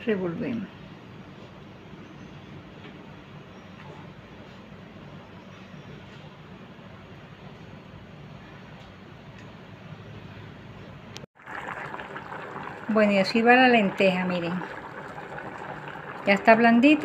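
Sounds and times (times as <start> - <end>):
soup bubbling in a pot: 11.4 - 17.0.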